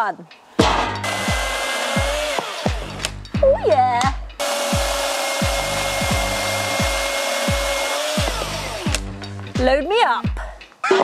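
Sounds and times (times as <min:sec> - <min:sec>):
chainsaw motor whine: 0:01.0 - 0:03.0, 0:04.4 - 0:09.0
wood being cut rasp: 0:01.0 - 0:03.2, 0:04.4 - 0:09.1.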